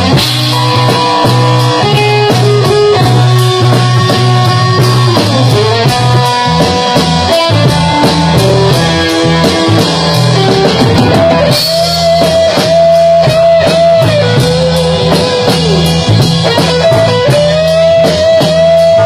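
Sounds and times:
rock band playing: 0:00.0 - 0:19.0.

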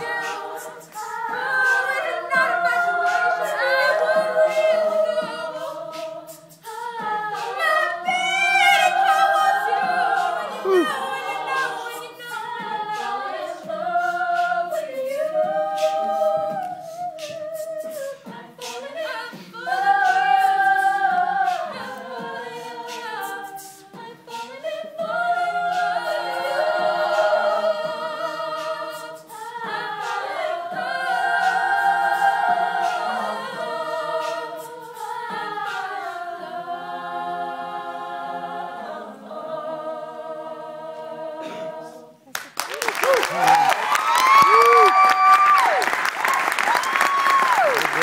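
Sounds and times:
backing vocal harmonies: 0:00.0 - 0:48.0
lead female voice singing: 0:07.2 - 0:14.5.

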